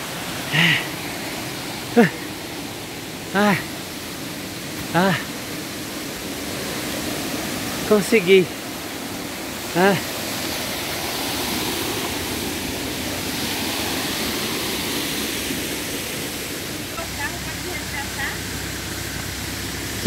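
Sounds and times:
waterfall roaring: 0.0s - 20.0s.

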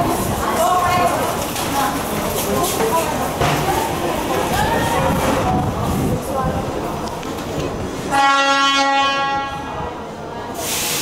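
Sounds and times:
crowd noise: 0.0s - 11.0s
train horn blast: 8.1s - 9.8s.

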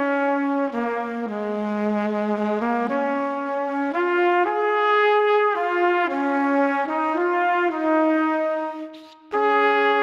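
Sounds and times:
brass melody in held notes: 0.0s - 10.0s.

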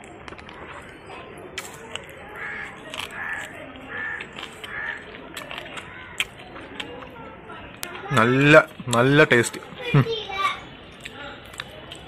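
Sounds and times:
chewing clicks: 0.0s - 9.1s, 10.9s - 12.0s
crow cawing: 2.4s - 5.1s, 5.8s - 6.3s.

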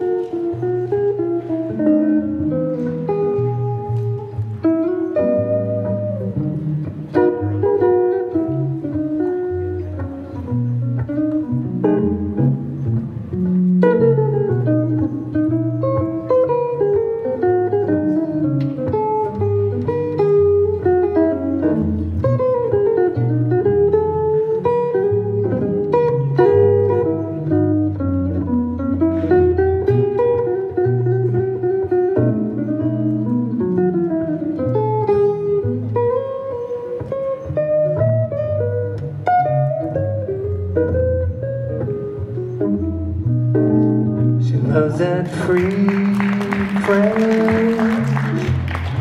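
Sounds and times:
solo acoustic guitar jazz: 0.0s - 49.0s.

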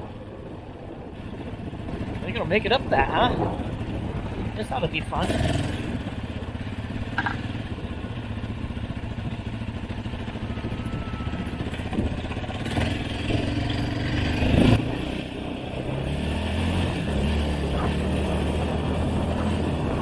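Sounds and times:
off-road vehicle engine: 0.0s - 20.0s.

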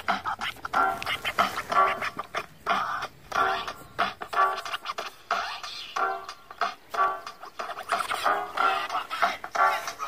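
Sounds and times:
vinyl scratching: 0.0s - 10.0s.

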